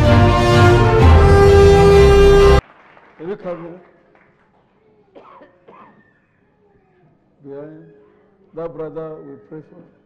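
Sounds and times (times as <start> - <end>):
person coughing faintly: 5.0 - 6.2.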